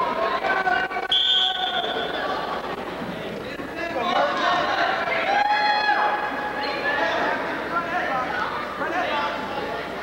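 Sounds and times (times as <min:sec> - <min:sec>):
people shouting and chattering: 0:00.0 - 0:10.0.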